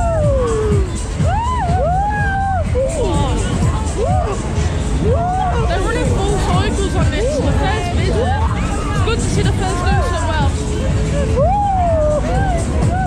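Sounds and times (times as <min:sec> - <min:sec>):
loud ride music: 0:00.0 - 0:13.0.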